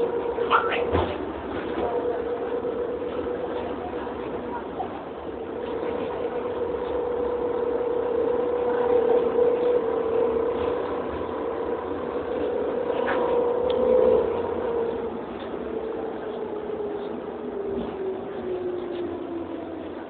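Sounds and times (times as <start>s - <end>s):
bus engine running: 0.0s - 20.0s.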